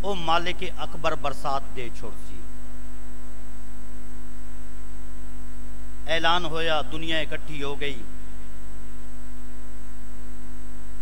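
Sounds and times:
man speaking: 0:00.0 - 0:02.5, 0:06.0 - 0:08.2
electrical mains hum: 0:00.0 - 0:11.0.

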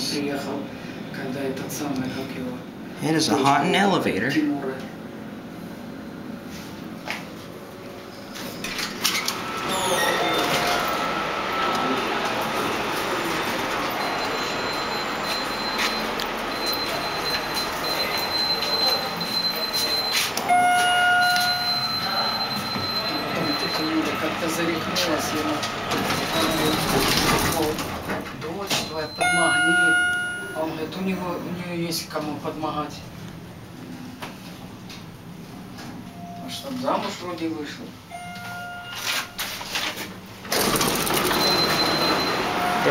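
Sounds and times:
elevator rumble and whine: 0:00.0 - 0:42.9
rush of lobby noise: 0:07.6 - 0:28.3
electronic tone: 0:14.0 - 0:24.5, 0:29.0 - 0:30.8, 0:38.1 - 0:39.6
elevator door mechanism clicks: 0:40.4 - 0:42.4.

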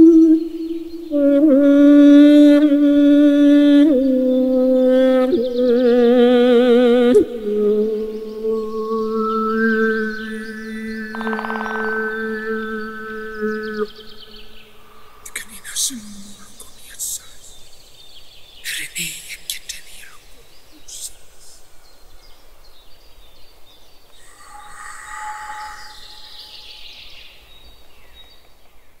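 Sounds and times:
high chirps: 0:08.5 - 0:18.0, 0:24.2 - 0:27.3.

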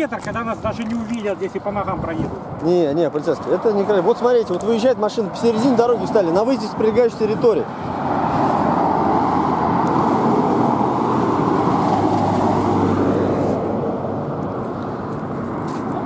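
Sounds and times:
highway traffic passing: 0:00.0 - 0:16.0
low engine hum: 0:08.0 - 0:16.0.

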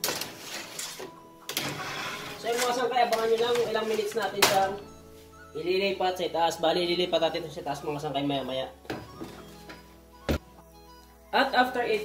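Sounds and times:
baking tray scraping on oven rack: 0:00.0 - 0:04.4.

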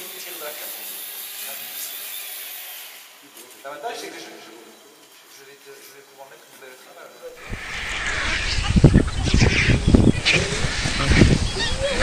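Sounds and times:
wind rumble on microphone: 0:07.4 - 0:12.0.

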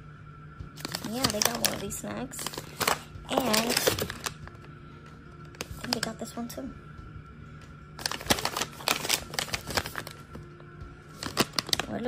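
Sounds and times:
plastic pouch crinkling: 0:00.8 - 0:01.8, 0:02.4 - 0:04.6, 0:05.6 - 0:06.1, 0:08.0 - 0:10.2, 0:11.1 - 0:12.0.

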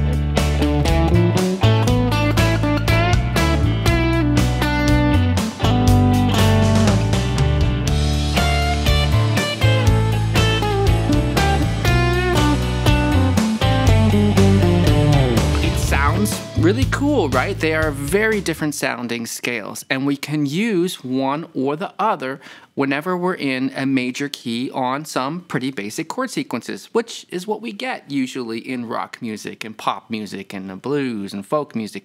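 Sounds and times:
electric guitar playing: 0:00.0 - 0:18.5
drums: 0:00.0 - 0:18.7
bass: 0:00.0 - 0:19.0.

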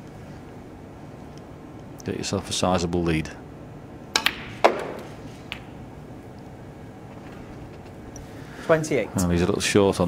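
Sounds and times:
snooker balls clicking: 0:04.1 - 0:05.8.

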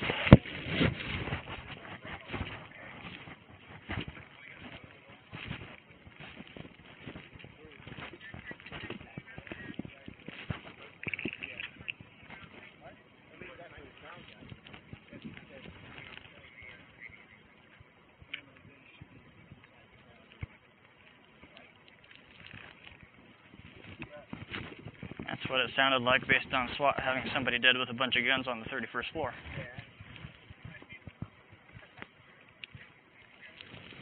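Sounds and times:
faint indistinct voices: 0:00.0 - 0:34.0
rustling: 0:00.0 - 0:34.0.

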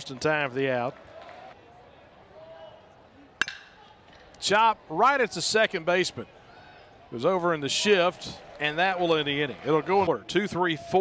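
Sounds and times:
metal bat hitting ball: 0:03.4 - 0:03.8.

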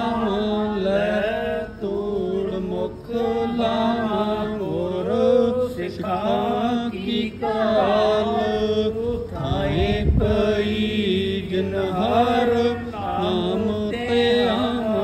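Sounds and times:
hymn sung in chant-like style: 0:00.0 - 0:15.0
low rumble: 0:09.2 - 0:11.1.

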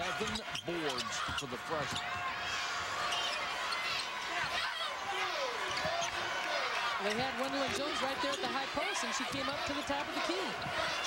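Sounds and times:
sneakers squeaking: 0:00.0 - 0:02.2, 0:03.0 - 0:04.6, 0:05.6 - 0:06.2, 0:07.5 - 0:11.0
arena crowd noise: 0:00.0 - 0:11.0.

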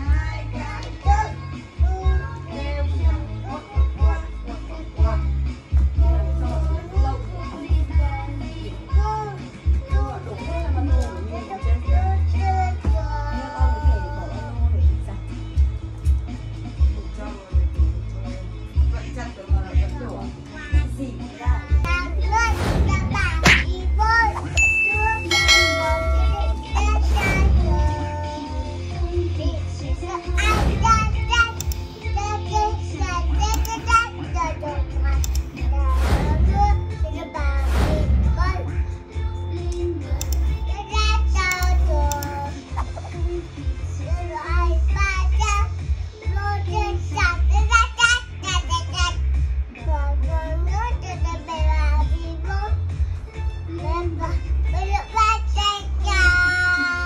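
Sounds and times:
background music: 0:00.0 - 0:57.0
child talking in high voice: 0:20.0 - 0:25.4, 0:26.2 - 0:28.8, 0:29.4 - 0:38.8, 0:40.1 - 0:42.6, 0:44.0 - 0:49.2, 0:49.8 - 0:52.8
high ding and ringing chime: 0:24.6 - 0:27.0.

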